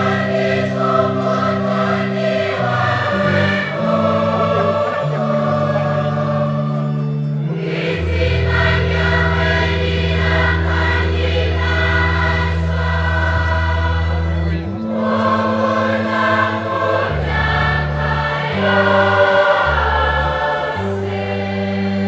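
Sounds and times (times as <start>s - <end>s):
choir singing a hymn: 0.0s - 22.0s
held bass notes: 0.0s - 22.0s.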